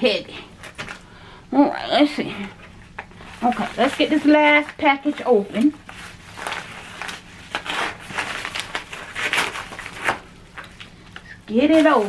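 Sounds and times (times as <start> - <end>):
plastic bag crinkling: 2.3 - 12.0.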